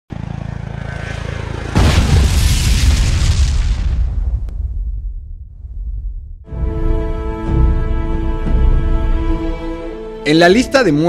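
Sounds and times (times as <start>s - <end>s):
helicopter rotor beating: 0.1s - 2.2s
loud boom: 1.8s - 6.5s.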